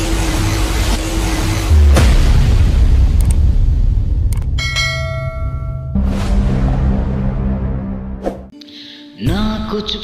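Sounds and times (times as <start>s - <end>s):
bright bell chime: 4.6s - 6.0s.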